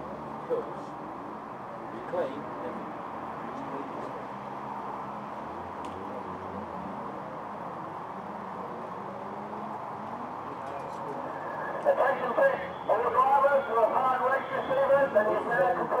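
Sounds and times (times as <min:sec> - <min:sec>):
distant voices: 0:00.0 - 0:16.0.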